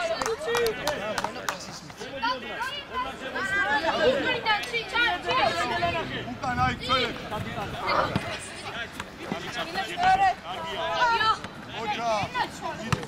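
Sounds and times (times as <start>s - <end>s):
young voices shouting: 2.1s - 8.8s, 9.5s - 12.8s.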